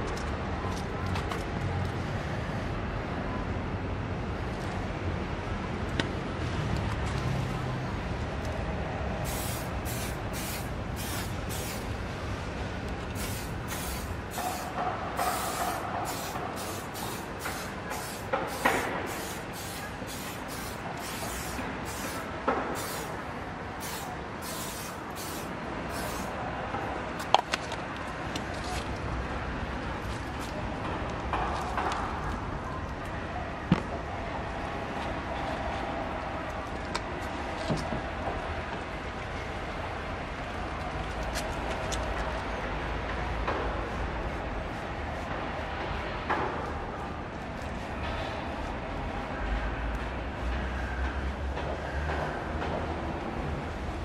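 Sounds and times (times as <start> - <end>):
aerosol spray hissing bursts: 9.2 - 11.9, 13.1 - 23.2, 23.8 - 26.3.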